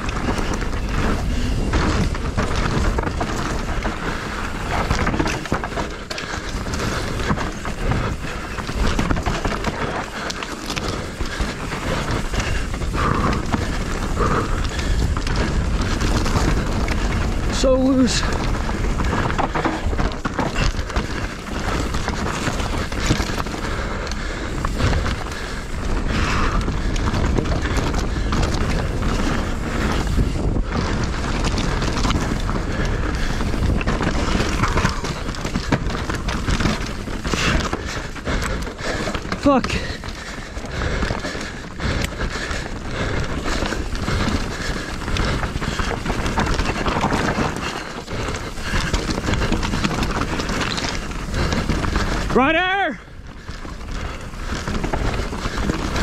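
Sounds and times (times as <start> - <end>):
bike rattling and knocking: 0.0 - 56.0
wind rush on microphone: 0.0 - 56.0.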